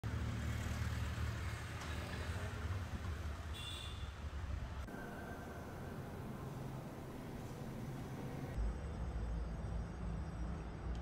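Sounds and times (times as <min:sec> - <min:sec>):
road traffic rumble: 0:00.0 - 0:11.0
faint steady high tone: 0:04.9 - 0:09.7.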